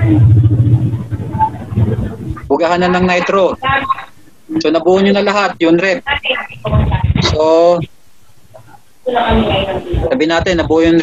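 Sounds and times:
loud rough low rumble: 0.0 - 4.8.

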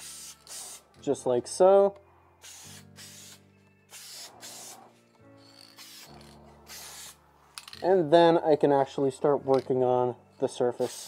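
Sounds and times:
spray paint can hissing: 0.0 - 0.9, 2.4 - 4.9, 5.5 - 7.2.

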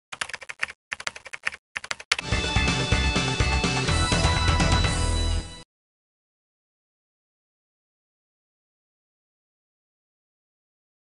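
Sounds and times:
computer keyboard typing: 0.1 - 2.2.

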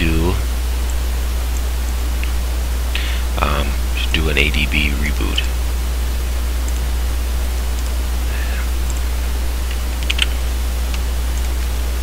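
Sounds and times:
constant low hum: 0.0 - 12.0
steady hiss: 0.0 - 12.0.

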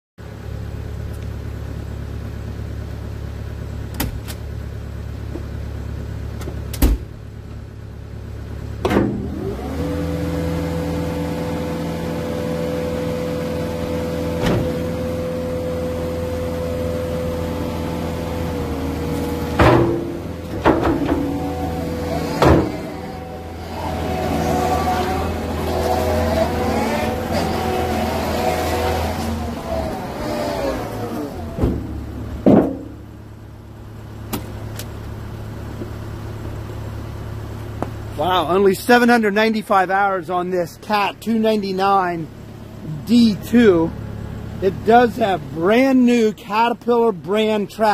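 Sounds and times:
diesel engine running: 0.2 - 47.9
sharp clunks: 8.8 - 9.3, 14.4 - 14.9, 19.1 - 21.6, 22.3 - 22.9, 31.6 - 33.1, 34.3 - 34.9
hydraulic whines: 8.8 - 35.1.

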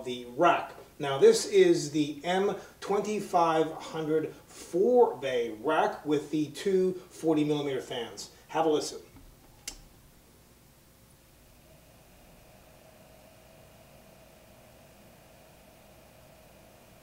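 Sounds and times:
cooling fans humming: 0.0 - 17.0
thin fan whine: 0.0 - 17.0.

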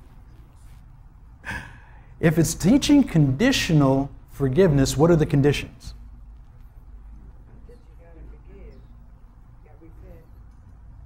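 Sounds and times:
low room hum: 0.0 - 11.0
person huffing breath: 1.4 - 2.2.

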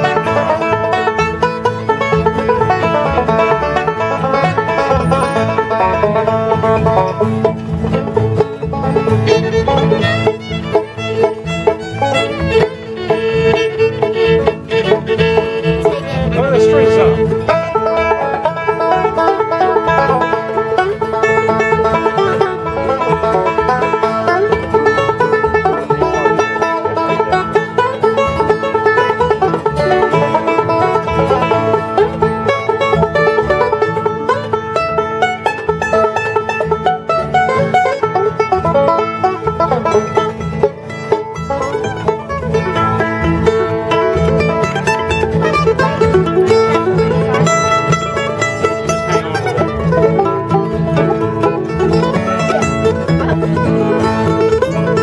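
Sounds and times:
acoustic guitar rhythm: 0.0 - 55.0
fiddle: 0.0 - 55.0
mandolin: 0.0 - 55.0
upright bass: 0.0 - 55.0.

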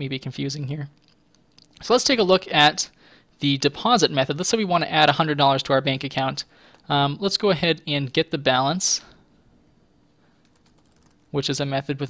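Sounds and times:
typing on computer keyboard: 10.4 - 11.3.

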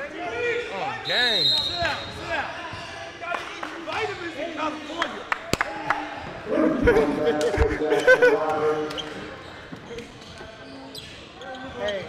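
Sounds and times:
players shouting and laughing: 5.6 - 9.0.

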